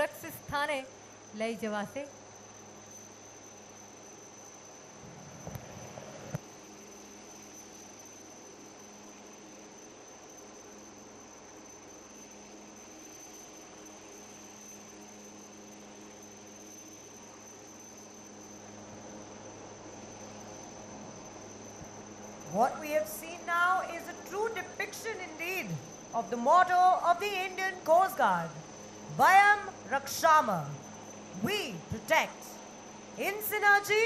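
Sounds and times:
faint electrical hum: 0:00.0 - 0:34.0
light hiss: 0:00.0 - 0:34.0.

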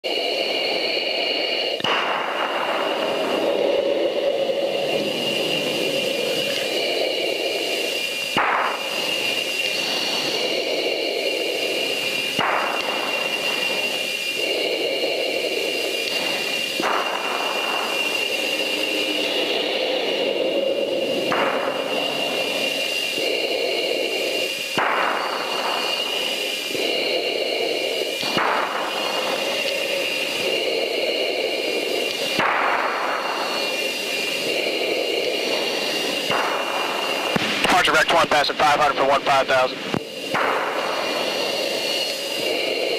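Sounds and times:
air rushing: 0:00.0 - 0:42.9
jet engine high whine: 0:00.0 - 0:42.9.

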